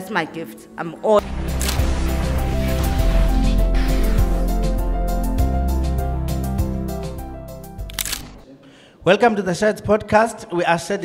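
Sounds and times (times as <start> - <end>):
theme music with heavy bass: 1.2 - 8.4.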